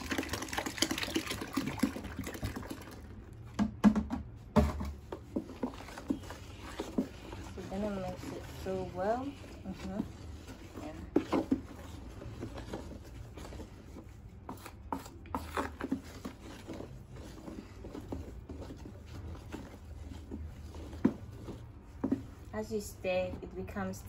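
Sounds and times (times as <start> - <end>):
wooden stick knocking plastic basin: 3.5 - 7.4.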